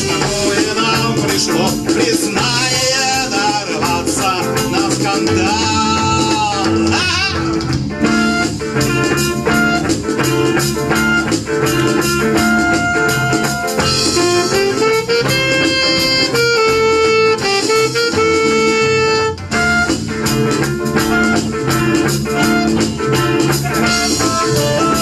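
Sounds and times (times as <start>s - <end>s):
bass guitar: 0.0s - 25.0s
drum kit: 0.0s - 25.0s
electric guitars: 0.0s - 25.0s
saxophone and clarinet melody: 6.8s - 25.0s.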